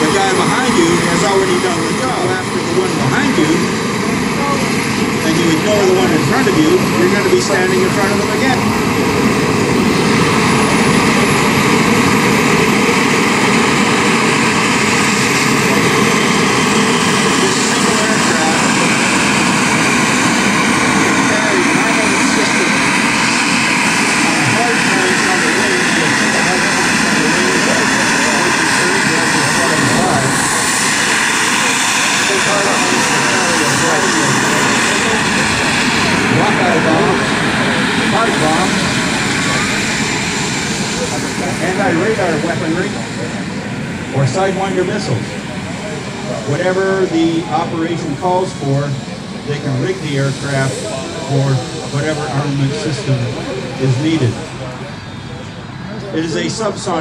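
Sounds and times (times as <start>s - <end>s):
model jet engines whining: 0.0s - 57.0s.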